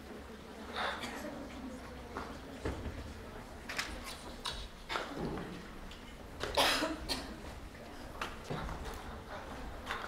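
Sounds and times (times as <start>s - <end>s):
person coughing: 6.6s - 7.4s.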